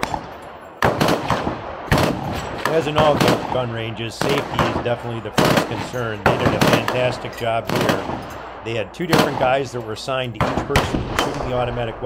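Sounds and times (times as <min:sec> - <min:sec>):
automatic gunfire: 0:00.0 - 0:07.1, 0:07.7 - 0:08.2.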